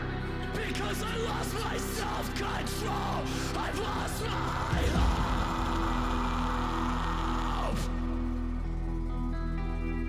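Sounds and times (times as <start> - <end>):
metalcore song with distorted guitar: 0.0 - 10.0.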